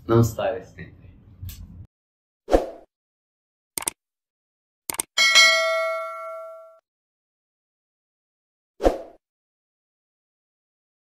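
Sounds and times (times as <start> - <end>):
notification bell ding: 5.2 - 6.8.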